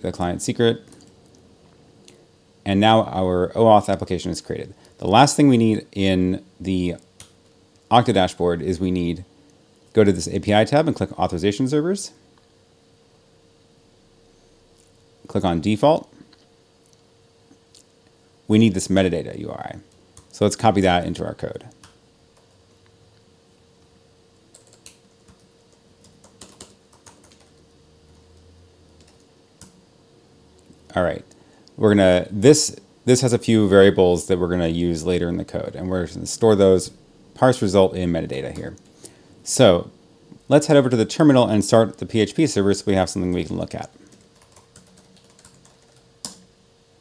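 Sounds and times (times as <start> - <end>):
faint steady hum: 0.0 - 47.0
typing on computer keyboard: 24.5 - 28.2, 29.0 - 29.8, 44.0 - 46.5.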